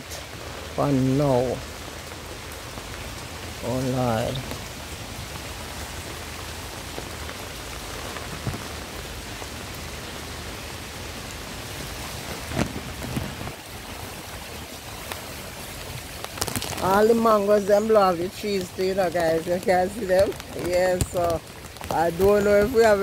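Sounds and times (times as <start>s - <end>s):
heavy rain on flooded ground: 0.0s - 23.0s.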